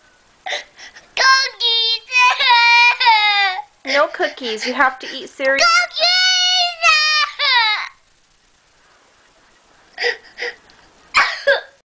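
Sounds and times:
toddler wailing: 1.2s - 3.7s, 5.6s - 8.0s.

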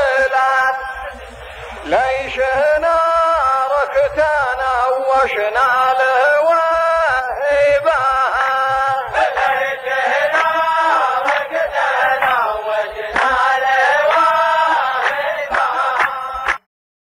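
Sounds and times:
men chanting in unison: 0.0s - 16.6s.

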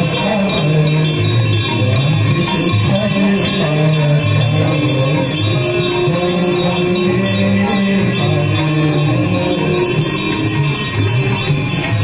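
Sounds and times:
devotional singing: 0.0s - 12.0s
hand bells ringing rapidly: 0.0s - 12.0s.

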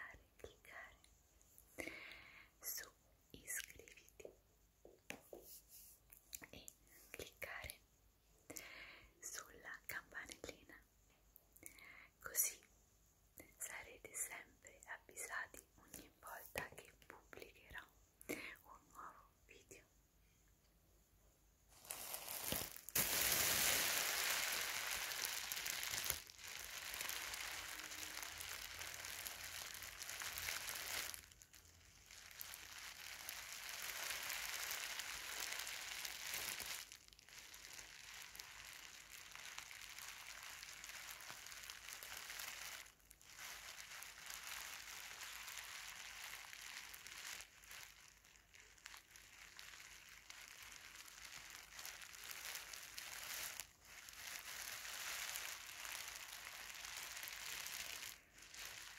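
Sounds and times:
plastic bag crinkling: 21.7s - 58.9s.

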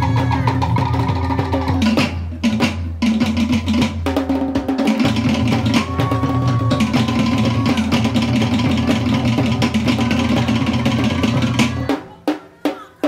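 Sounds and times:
deep steady drum: 0.0s - 13.0s
rapid wooden drum strikes: 0.0s - 13.0s.

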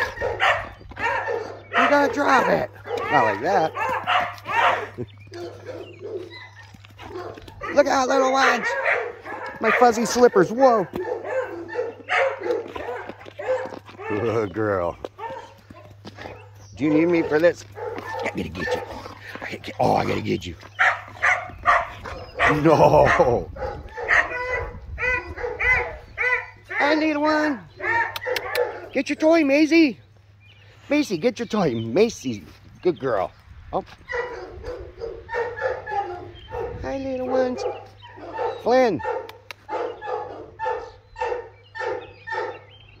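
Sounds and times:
dog barking: 0.0s - 14.5s, 15.2s - 19.1s, 20.8s - 27.1s, 27.8s - 29.0s, 34.0s - 42.7s.

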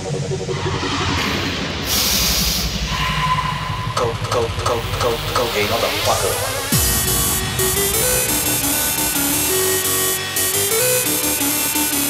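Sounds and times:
pulsing bass: 0.0s - 12.0s
high synth tone: 2.8s - 12.0s.

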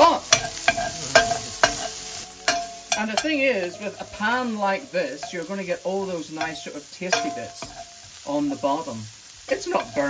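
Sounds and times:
onion sizzling in oil: 0.0s - 10.0s
spatula scraping pan: 0.0s - 10.0s.

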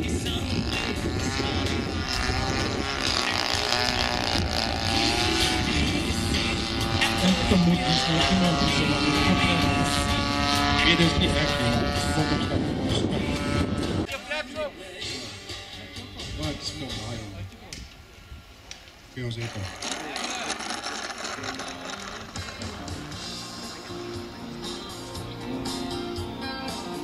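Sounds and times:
model airplane motor in flight: 0.0s - 14.1s, 19.3s - 24.2s.

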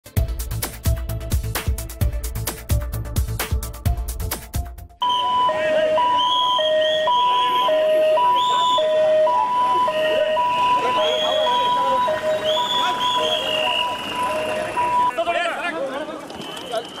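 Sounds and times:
beat-driven intro music: 0.0s - 15.1s
ambulance two-tone siren: 5.0s - 15.2s
crowd voices: 5.0s - 17.0s.

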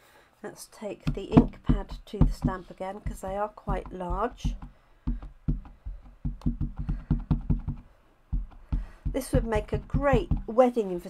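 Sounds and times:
ink pad tapping on stamp: 1.1s - 10.6s.

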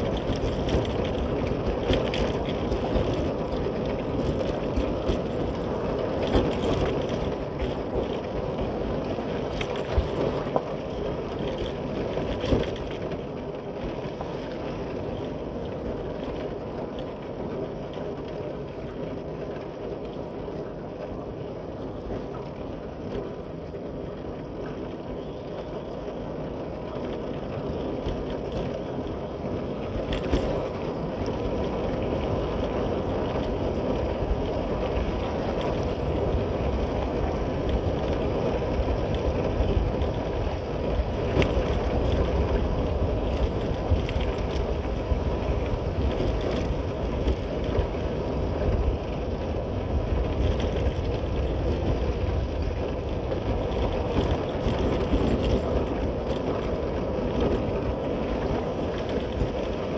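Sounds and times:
wind on microphone: 25.0s - 59.9s.

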